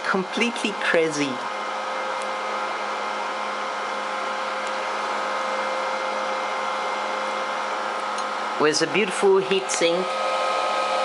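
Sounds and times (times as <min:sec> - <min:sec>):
cooling fan running: 0:00.0 - 0:11.0.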